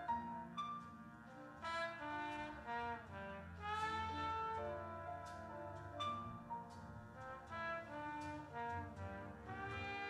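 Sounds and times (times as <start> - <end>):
jazz big band brass music: 0.0 - 10.0
trombone melody: 1.6 - 6.3, 7.2 - 10.0.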